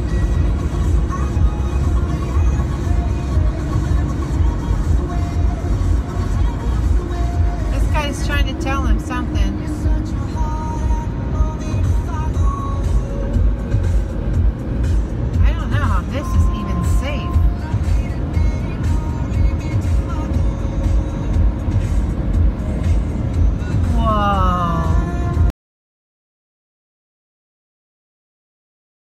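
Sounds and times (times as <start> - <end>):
music playing: 0.0 - 25.5
truck rumbling at highway speed: 0.0 - 25.5
voice: 7.7 - 9.8, 15.4 - 17.5, 23.8 - 25.2.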